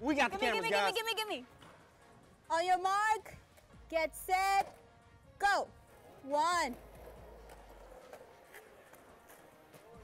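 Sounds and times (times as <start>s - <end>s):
skateboard rolling on concrete: 5.7s - 10.0s.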